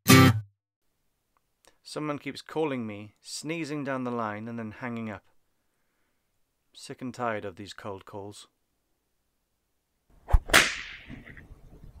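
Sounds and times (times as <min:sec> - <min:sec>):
sharp bright crack: 0:10.3 - 0:11.4.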